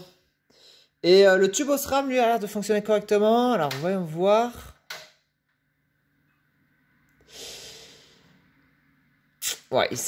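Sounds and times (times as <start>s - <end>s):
person exhaling: 7.2s - 8.4s.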